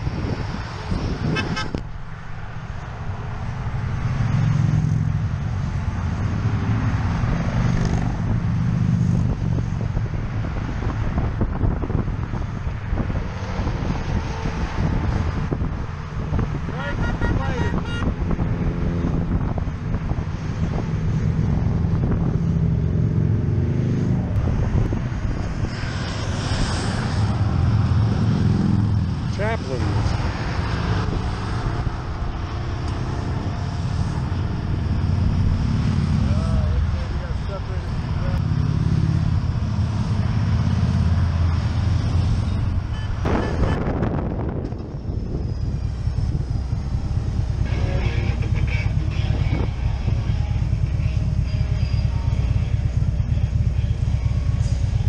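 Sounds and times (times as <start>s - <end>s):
wind on microphone: 0.0s - 3.5s, 6.2s - 29.3s, 41.5s - 47.6s
motorcycles passing: 0.0s - 55.0s
motorcycle engine running: 45.2s - 55.0s.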